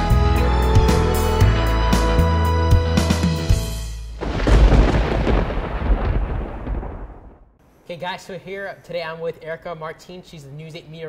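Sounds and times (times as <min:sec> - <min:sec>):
rolling thunder rumble: 0:04.2 - 0:07.6.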